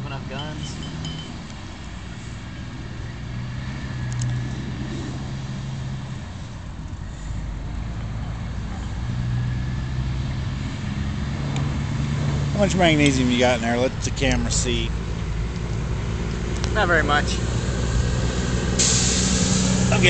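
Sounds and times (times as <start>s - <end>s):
vehicle engine humming: 0.0s - 20.0s.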